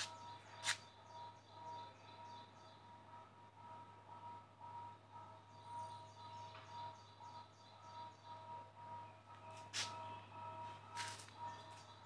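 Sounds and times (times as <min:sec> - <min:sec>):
bird chirping: 0:00.0 - 0:03.2, 0:05.2 - 0:12.0
steady low hum: 0:00.0 - 0:12.0.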